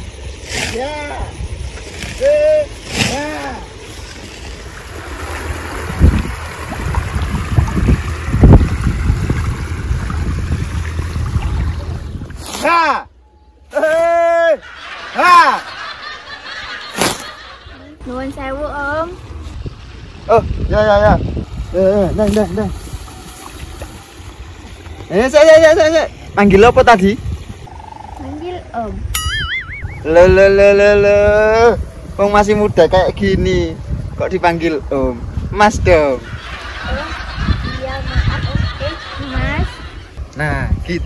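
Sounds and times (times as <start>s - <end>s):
wind buffeting microphone: 4.6s - 12.5s, 17.6s - 41.0s.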